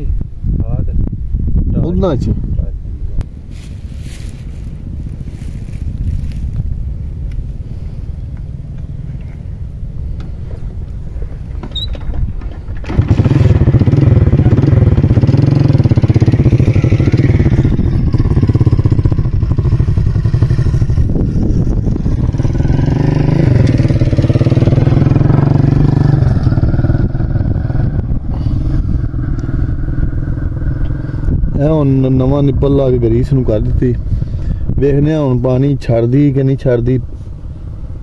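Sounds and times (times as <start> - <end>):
small petrol engine running: 12.8 - 27.7.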